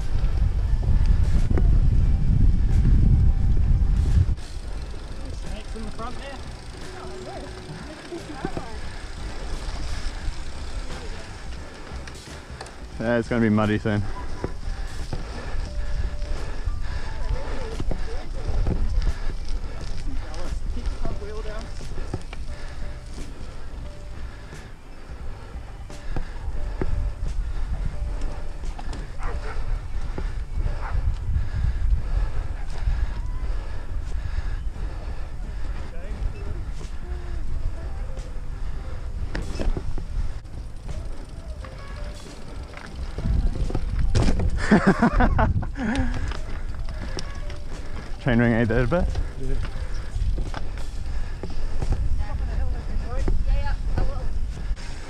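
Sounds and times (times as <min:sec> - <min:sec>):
wind buffeting microphone: 0:00.0 - 0:06.9, 0:07.5 - 0:55.0
steady low rumble: 0:00.0 - 0:47.0
bike rattling and clicking: 0:00.0 - 0:55.0.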